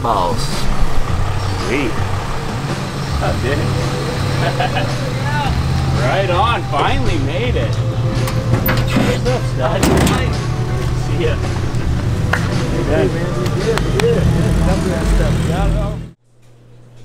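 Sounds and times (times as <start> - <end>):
people talking indistinctly: 0.0 - 16.2
vehicle engine idling: 0.0 - 16.2.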